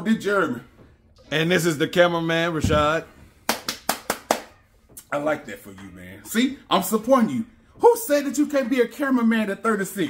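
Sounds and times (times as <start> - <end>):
sharp hand claps: 3.4 - 4.6.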